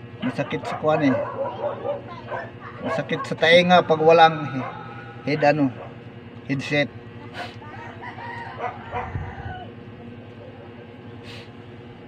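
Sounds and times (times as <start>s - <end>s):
rooster crowing: 7.7s - 9.9s.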